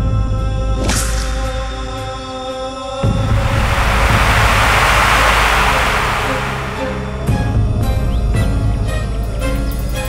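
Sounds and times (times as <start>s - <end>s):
loud rushing noise swell: 3.0s - 7.5s
steady low drone: 3.0s - 7.5s.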